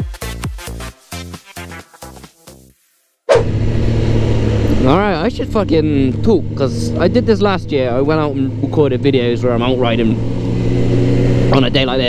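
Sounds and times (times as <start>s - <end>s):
motorcycle engine cruising: 3.3s - 12.0s.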